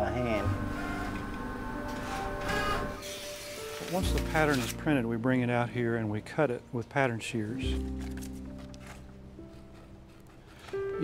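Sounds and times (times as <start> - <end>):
background music: 0.0 - 11.0
plotter printing: 0.7 - 1.3, 1.9 - 4.0.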